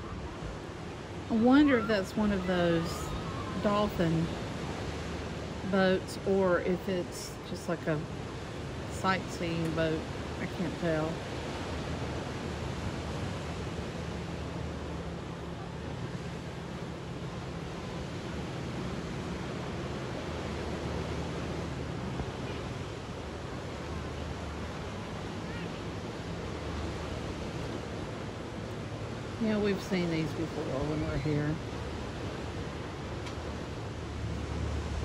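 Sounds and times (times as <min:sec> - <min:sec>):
low steady hum: 0:00.0 - 0:35.0
surf: 0:00.0 - 0:35.0
wind: 0:00.0 - 0:35.0.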